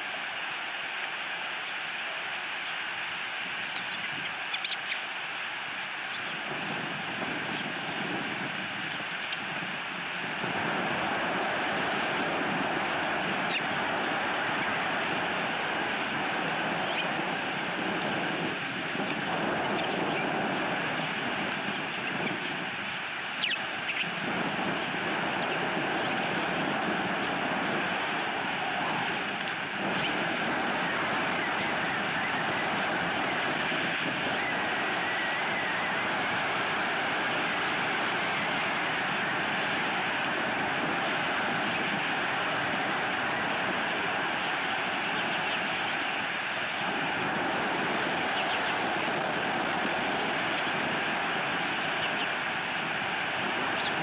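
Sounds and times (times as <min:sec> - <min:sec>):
rushing outdoor background noise: 0:00.0 - 0:54.0.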